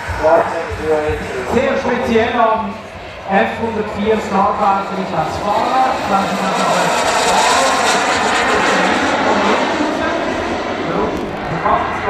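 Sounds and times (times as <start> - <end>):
small jet turbine whoosh: 0.0 - 12.0.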